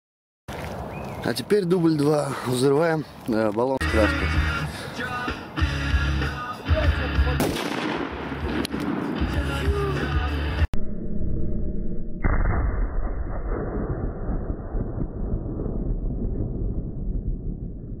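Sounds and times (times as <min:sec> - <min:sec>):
music: 0:03.8 - 0:07.5, 0:08.3 - 0:10.7
sharp crack: 0:07.4 - 0:09.5
long low rumble: 0:10.7 - 0:18.0
aerosol can exploding boom: 0:12.2 - 0:15.8.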